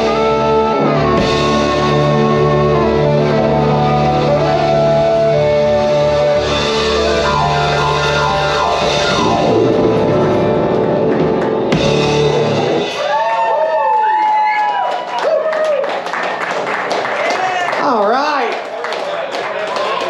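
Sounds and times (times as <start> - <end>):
live rock band playing: 0.0 - 13.3.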